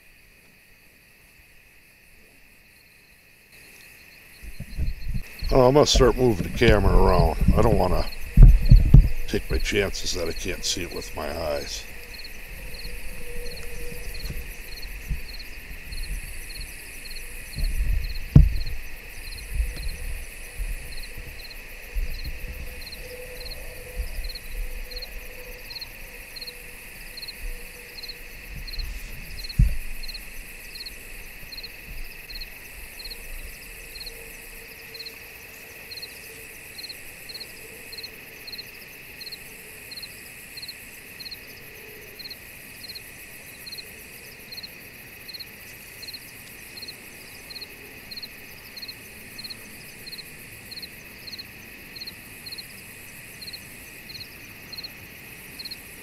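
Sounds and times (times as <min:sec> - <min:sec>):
crickets chirping: 0:00.0 - 0:56.0
high insect drone: 0:00.0 - 0:56.0.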